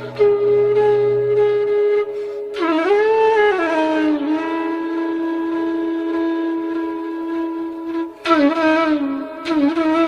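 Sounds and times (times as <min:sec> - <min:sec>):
flute holding long note: 0:00.0 - 0:10.0.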